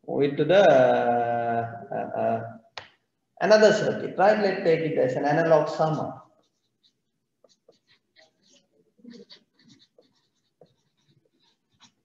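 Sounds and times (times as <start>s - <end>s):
marker pen scratching on paper: 5.7s - 12.0s.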